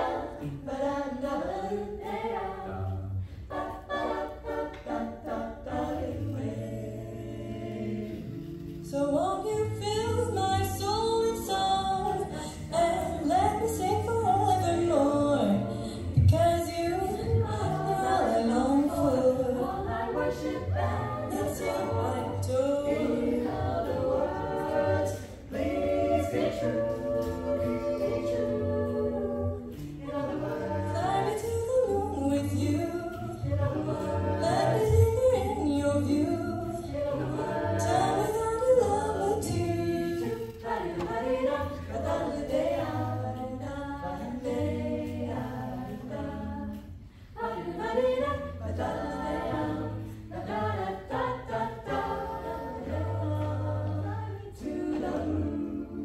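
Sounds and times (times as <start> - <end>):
a cappella choir singing: 0.0 - 56.0.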